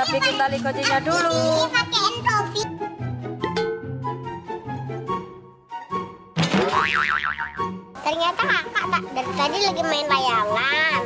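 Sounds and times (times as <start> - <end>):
light background music: 0.0 - 11.0
cartoon boing effect: 6.4 - 7.8.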